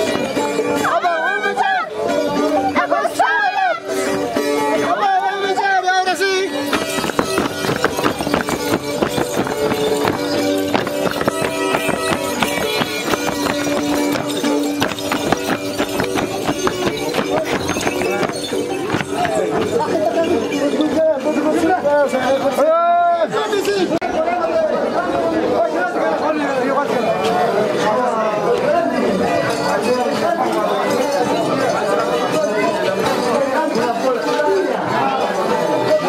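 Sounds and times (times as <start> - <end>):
feet stamping on dirt: 6.6 - 19.9.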